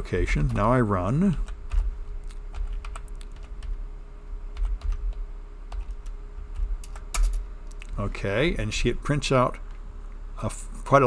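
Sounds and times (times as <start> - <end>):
low steady hum: 0.0 - 11.0
typing on computer keyboard: 2.5 - 3.8, 4.6 - 7.4.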